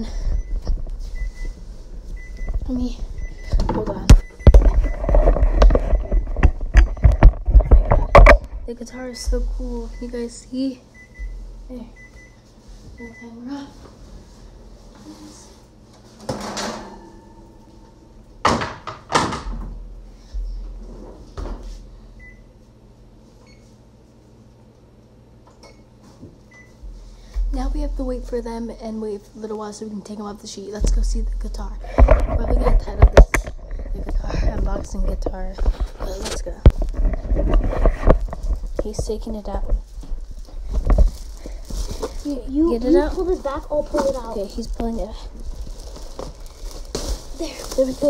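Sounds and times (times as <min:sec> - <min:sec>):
oven door shutting: 0:16.2 - 0:17.5
plastic wrapping rustling: 0:31.9 - 0:48.0.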